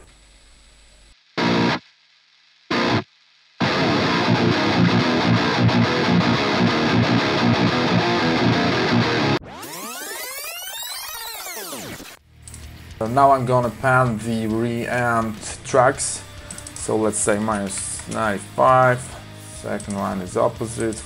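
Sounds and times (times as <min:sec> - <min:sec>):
distorted electric guitar riff: 0:01.3 - 0:01.9, 0:02.6 - 0:21.0.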